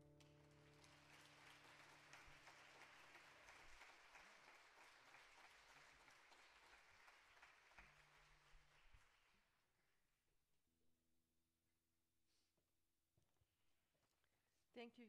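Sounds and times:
congregation applauding: 0:00.0 - 0:09.6.

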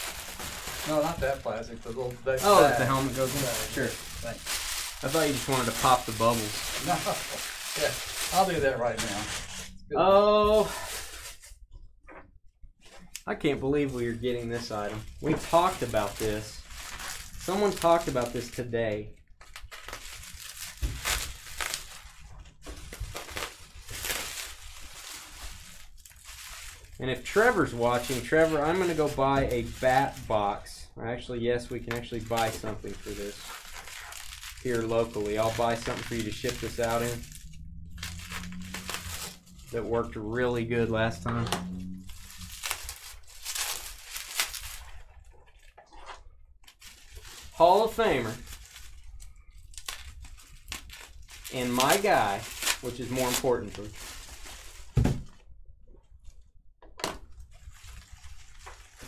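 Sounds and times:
bubble wrap crinkling: 0:00.0 - 0:11.7, 0:12.8 - 0:30.7, 0:31.7 - 0:55.6, 0:57.2 - 0:59.0.

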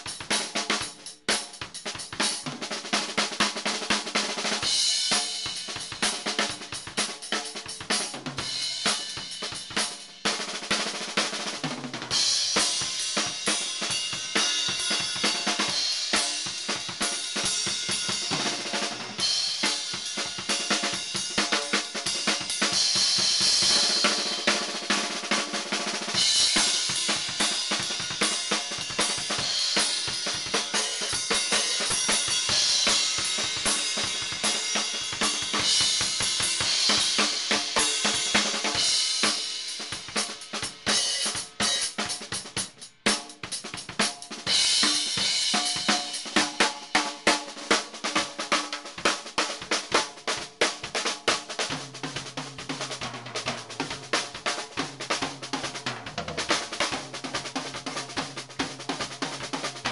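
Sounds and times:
acoustic drum solo: 0:00.0 - 0:59.9.

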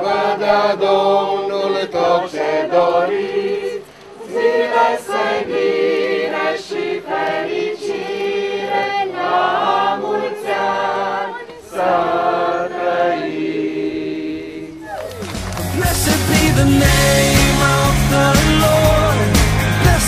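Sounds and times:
group singing a worship song: 0:00.0 - 0:14.9, 0:15.7 - 0:20.0.

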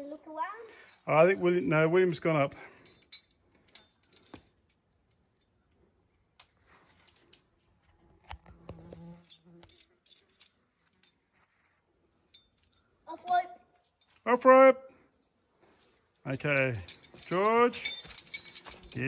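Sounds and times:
faint metallic clicks and clinks: 0:02.5 - 0:08.0, 0:08.9 - 0:14.3, 0:15.7 - 0:19.0.

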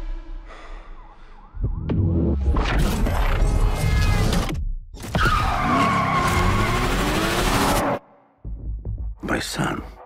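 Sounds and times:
car tyres squealing: 0:05.1 - 0:07.8.

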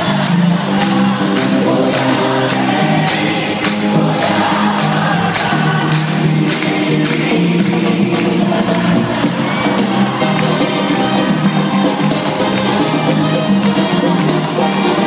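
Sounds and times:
crowd cheering: 0:00.0 - 0:15.0
crowd singing along: 0:00.0 - 0:15.0
live band music over sound system: 0:00.0 - 0:15.0.

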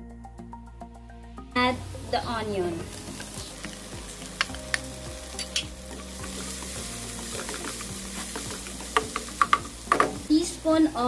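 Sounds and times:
garlic and onion sizzling in oil: 0:01.6 - 0:11.0
utensil clicking and scraping pan: 0:03.2 - 0:10.2.

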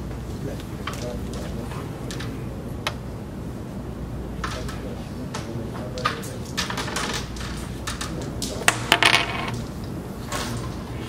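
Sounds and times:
carrom men clattering: 0:04.4 - 0:10.7
carrom striker crack: 0:08.7 - 0:09.6.

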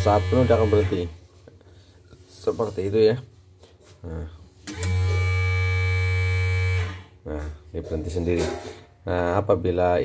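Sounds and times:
bobbin winder motor humming: 0:00.0 - 0:01.0, 0:04.7 - 0:07.0.

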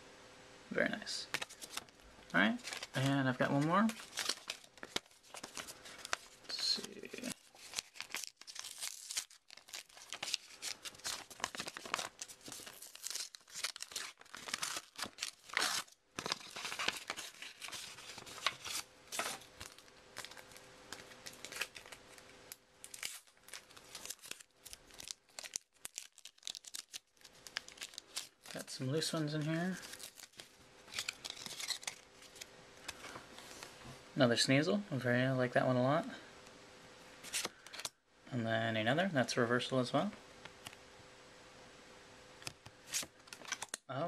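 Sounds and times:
paper tearing and crumpling: 0:01.3 - 0:01.9, 0:02.6 - 0:33.0.

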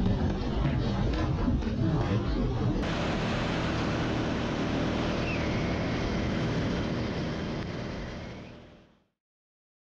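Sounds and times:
motorcycle engine running: 0:02.8 - 0:09.1.

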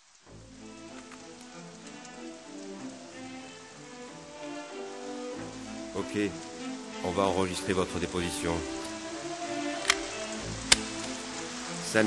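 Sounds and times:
rain hissing and pattering: 0:00.0 - 0:12.0
slow sustained melodic music: 0:00.0 - 0:12.0.

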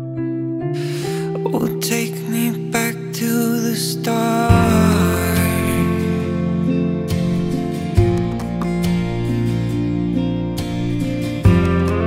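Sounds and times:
slow guitar chords and picking: 0:00.0 - 0:12.0
singer breathing in: 0:00.8 - 0:01.4
man singing: 0:00.8 - 0:06.6.

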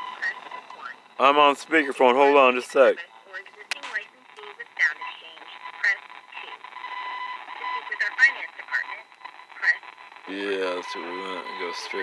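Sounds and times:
steady held phone tone: 0:00.0 - 0:12.0.

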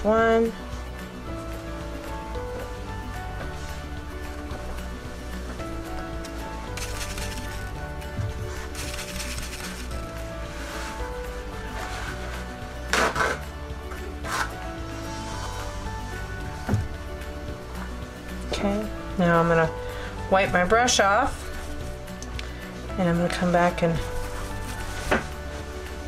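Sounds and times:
background music with bass line: 0:00.0 - 0:26.0.

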